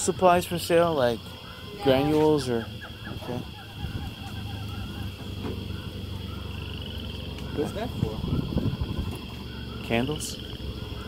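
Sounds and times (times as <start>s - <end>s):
low rumble: 2.7s - 11.0s.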